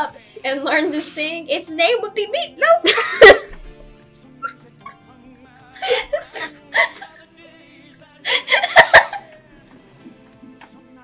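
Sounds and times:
quiet music with held notes: 0:00.0 - 0:11.0
girl laughing: 0:02.8 - 0:03.7, 0:04.4 - 0:05.0, 0:05.8 - 0:07.2, 0:08.3 - 0:09.3
stifled giggles: 0:02.9 - 0:03.8, 0:04.4 - 0:05.0, 0:05.8 - 0:07.2, 0:08.3 - 0:09.4.

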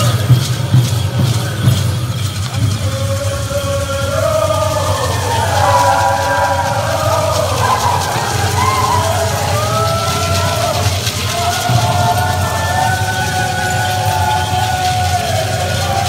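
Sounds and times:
chorus of voices singing: 0:02.8 - 0:16.0.

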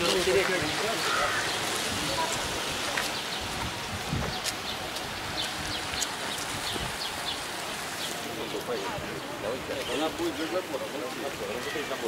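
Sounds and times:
rain on wet asphalt: 0:00.0 - 0:12.0.

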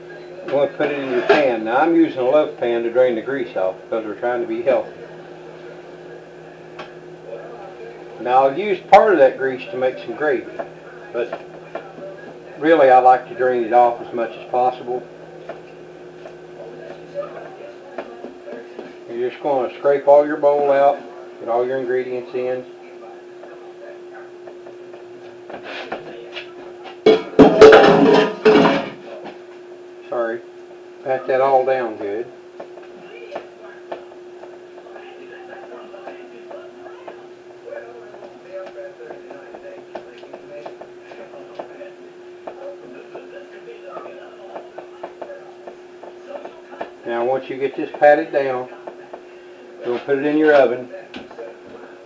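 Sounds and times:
steady hum: 0:00.0 - 0:52.0
bowl scraping: 0:00.6 - 0:01.6.

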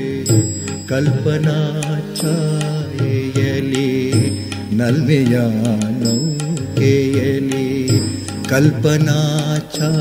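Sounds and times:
instrumental accompaniment: 0:00.0 - 0:10.0
person singing with vibrato: 0:00.0 - 0:10.0.

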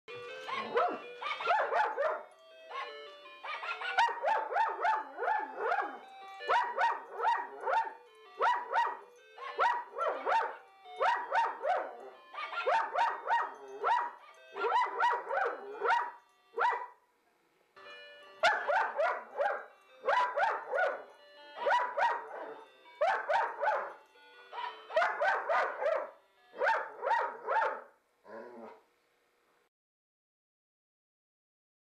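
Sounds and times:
toy dog playing bark-like song: 0:00.1 - 0:17.0, 0:17.8 - 0:28.0
dog singing along: 0:00.5 - 0:16.8.

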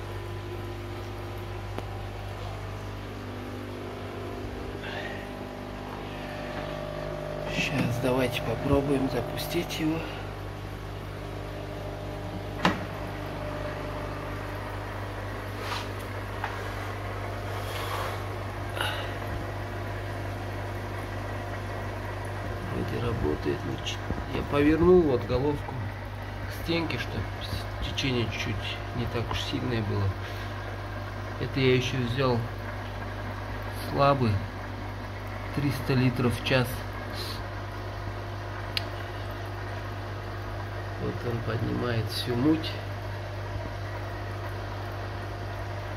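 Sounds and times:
aquarium pumps humming: 0:00.0 - 0:45.9
small click: 0:38.7 - 0:38.9.

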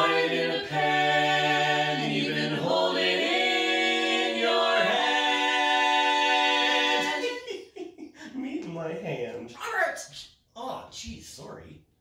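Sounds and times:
barbershop quartet singing a cappella: 0:00.0 - 0:07.6.

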